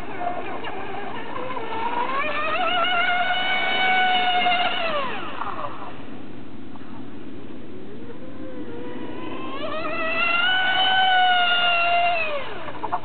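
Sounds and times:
model boat motor whining: 0.0 - 6.4, 7.5 - 13.0.

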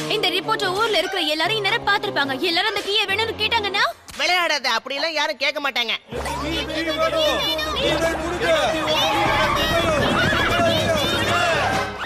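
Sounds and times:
cartoon crowd cheering: 6.2 - 12.0.

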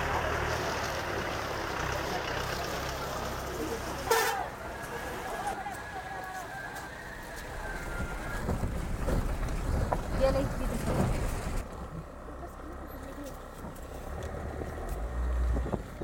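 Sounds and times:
vehicle moving along road: 0.0 - 16.0
wind rumble on microphone: 7.4 - 11.6, 15.3 - 16.0.

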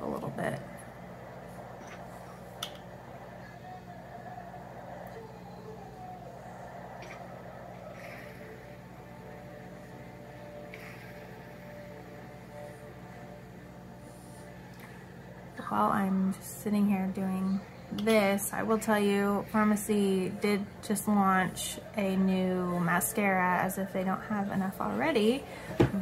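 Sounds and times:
faint wavering tones: 0.0 - 26.0
low hum: 0.0 - 26.0.

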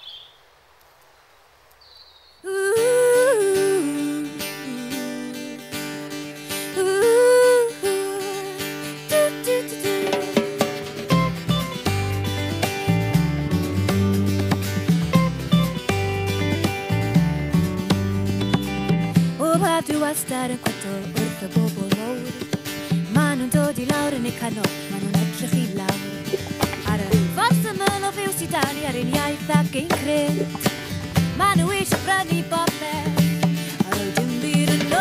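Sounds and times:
acoustic guitar strumming: 2.8 - 35.0
bass and drums: 10.0 - 19.8, 21.2 - 35.0
wordless gliding vocals: 23.4 - 33.2.

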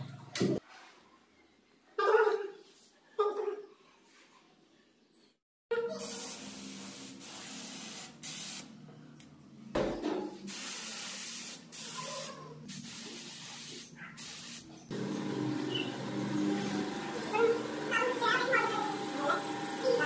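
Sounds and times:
paint spray gun hissing: 6.0 - 8.7, 10.5 - 20.0.

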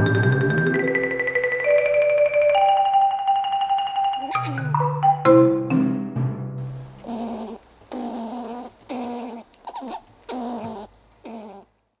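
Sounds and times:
wavering animal-like calls: 3.7 - 4.7, 7.0 - 11.7.

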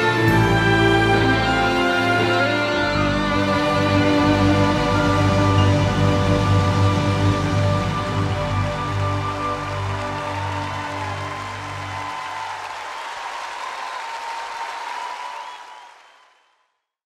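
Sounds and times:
orchestra held chord: 0.0 - 12.1
audience applause: 0.0 - 16.7.

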